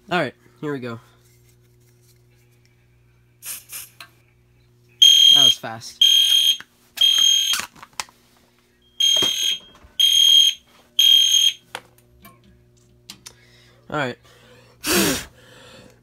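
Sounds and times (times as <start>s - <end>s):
fire alarm horn blasts: 5.0s - 7.6s, 9.0s - 11.6s.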